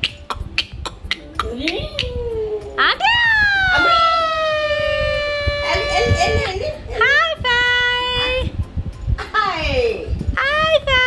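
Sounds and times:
person singsong calling: 0.0s - 6.2s.

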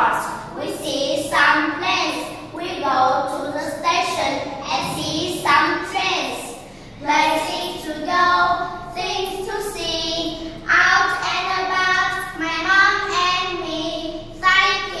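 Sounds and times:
girls singing: 4.7s - 5.9s.

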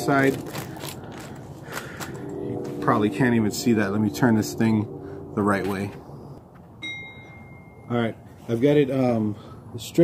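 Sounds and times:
clear ding: 6.8s - 8.1s.

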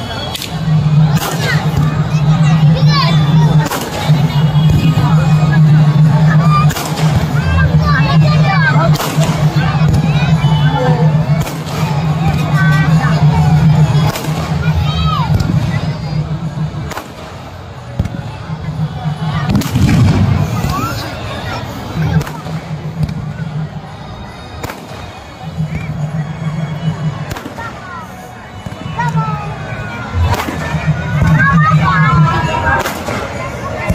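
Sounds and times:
fireworks cracking: 0.0s - 16.0s, 16.6s - 18.3s, 19.3s - 21.2s, 21.9s - 23.3s, 27.2s - 28.0s, 30.2s - 33.9s
crowd shouting and chattering: 0.0s - 33.9s
firework bursting with a bang: 19.5s - 20.9s.

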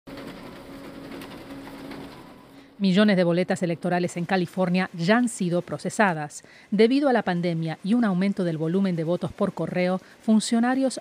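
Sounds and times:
ballot scanner humming and ticking: 0.1s - 2.8s.

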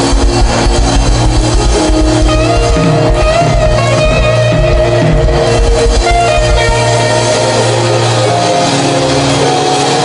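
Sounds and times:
fast pulsing bass: 0.0s - 10.0s
guitar and keyboard chords: 0.0s - 10.0s.

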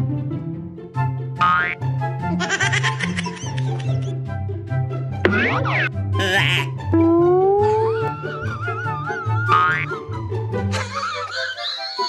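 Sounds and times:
comedic background music: 0.0s - 12.0s
cartoon boing: 1.4s - 1.8s, 5.3s - 8.5s, 9.4s - 9.9s
cartoon warbling effect: 1.4s - 1.8s, 5.3s - 10.0s.

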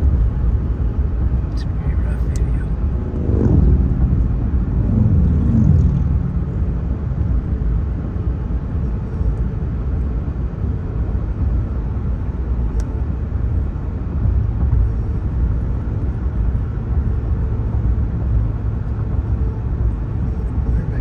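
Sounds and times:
road and engine rumble: 0.0s - 21.0s
vehicle passing: 1.6s - 8.0s.

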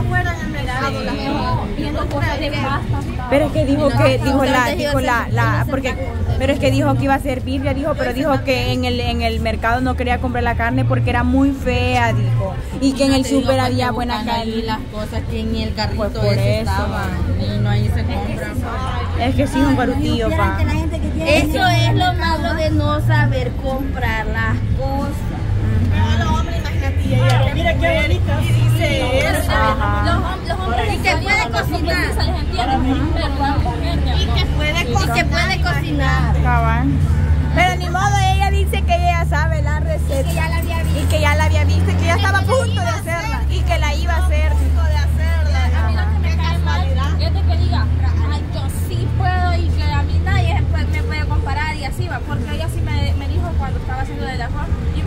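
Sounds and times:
people talking: 0.0s - 55.0s.

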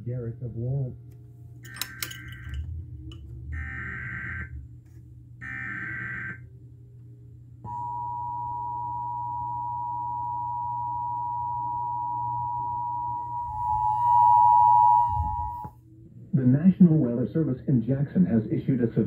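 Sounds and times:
two-tone attention signal: 7.7s - 15.8s.

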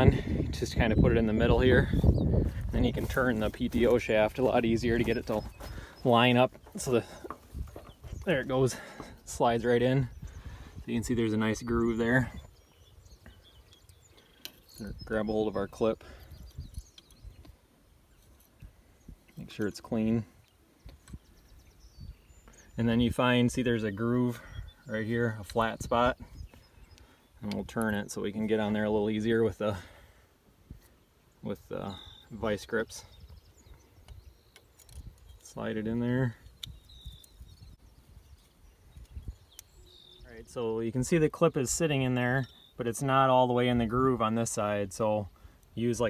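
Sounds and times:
wind rumbling on microphone: 0.0s - 6.0s, 6.8s - 13.6s, 14.8s - 17.6s, 20.8s - 23.8s, 36.4s - 40.3s.

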